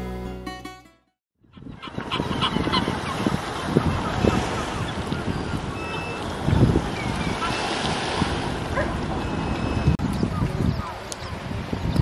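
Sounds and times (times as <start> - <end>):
plucked string music: 0.0 - 1.2
gulls calling: 1.4 - 11.4.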